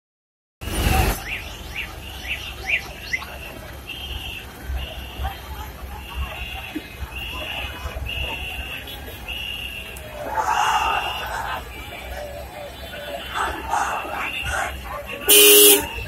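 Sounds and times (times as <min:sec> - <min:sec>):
low street rumble: 0:00.6 - 0:16.0.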